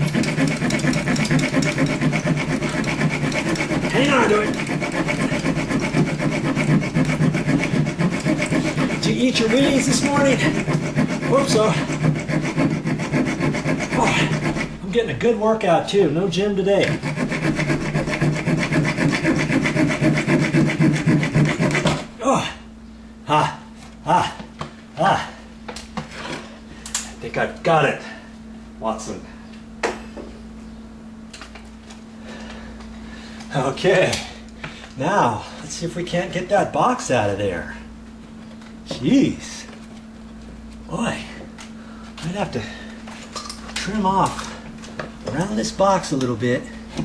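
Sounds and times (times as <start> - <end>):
hacksaw blade sawing on nail: 0.0 - 14.8, 16.8 - 22.1.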